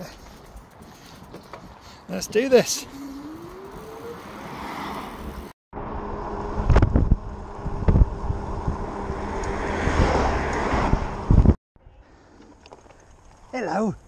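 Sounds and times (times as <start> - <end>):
wind rush: 3.2 - 11.6
wind buffeting thumps: 6.0 - 11.6.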